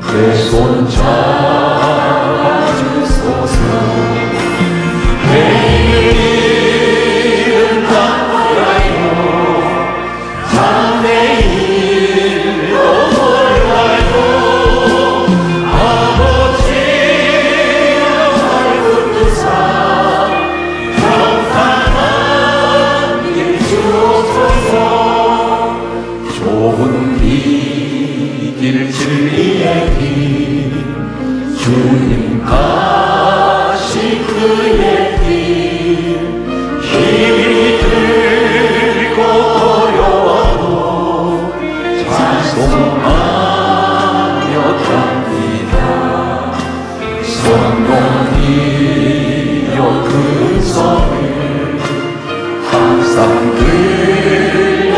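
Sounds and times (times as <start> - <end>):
band accompaniment: 0.0 - 54.9
group singing worship song: 0.0 - 54.9.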